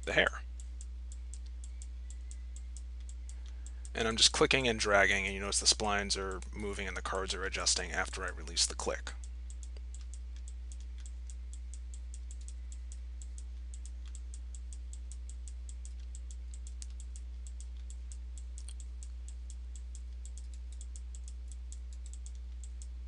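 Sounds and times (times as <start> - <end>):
low electrical hum: 0.0 - 23.0
mouse and keyboard clicking: 20.0 - 22.9.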